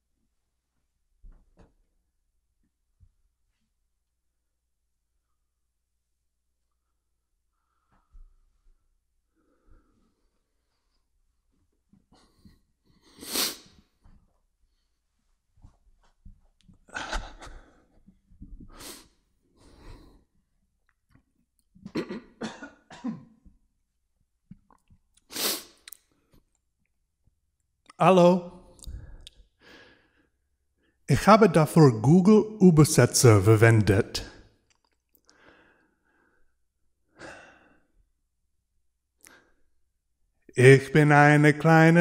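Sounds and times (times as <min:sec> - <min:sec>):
man breathing close to microphone: 0:16.9 - 0:20.5, 0:28.7 - 0:31.0
man clearing his throat: 0:21.9 - 0:23.4
man coughing: 0:21.9 - 0:23.4
man breathing hard: 0:28.8 - 0:30.4.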